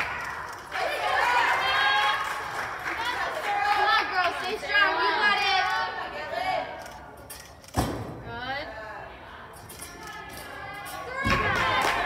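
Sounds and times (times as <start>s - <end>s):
spectators chattering softly: 0.0s - 12.0s.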